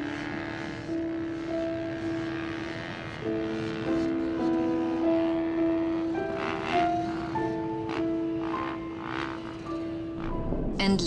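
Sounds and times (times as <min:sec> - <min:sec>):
background music of held notes: 0:00.0 - 0:10.7
dirt bike engine: 0:00.0 - 0:10.8.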